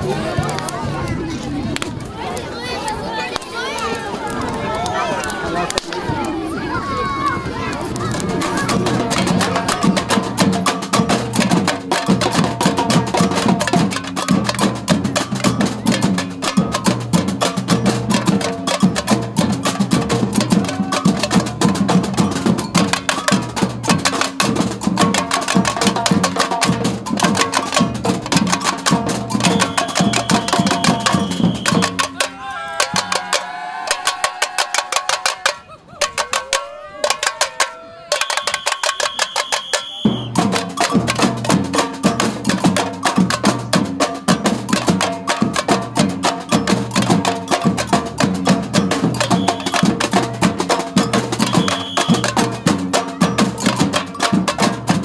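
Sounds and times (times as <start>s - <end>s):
samba drum group playing: 8.0s - 55.0s.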